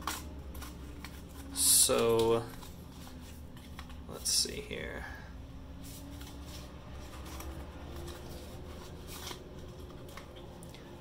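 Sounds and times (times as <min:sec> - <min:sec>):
cardboard rustling and scraping: 0:00.0 - 0:04.4, 0:05.8 - 0:10.6.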